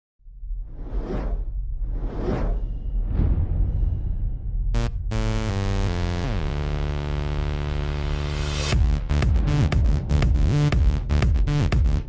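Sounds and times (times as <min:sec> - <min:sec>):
deep rumble: 0:00.2 - 0:07.6
whoosh sound effect: 0:00.6 - 0:04.6.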